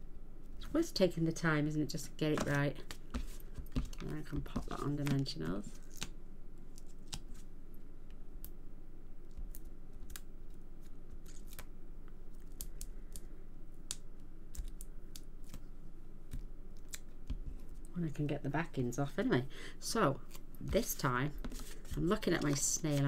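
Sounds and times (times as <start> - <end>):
low steady hum: 0.0 - 23.0
hands handling card and foam: 2.3 - 7.5, 20.2 - 23.0.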